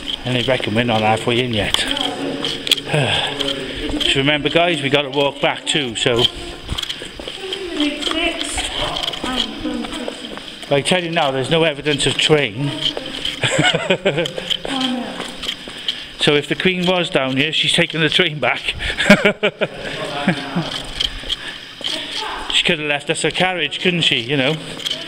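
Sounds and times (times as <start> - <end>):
footsteps scuffing on floor: 0.0 - 18.3, 19.7 - 25.0
people talking indistinctly: 0.0 - 25.0
man laughing: 13.4 - 14.7, 18.7 - 21.0.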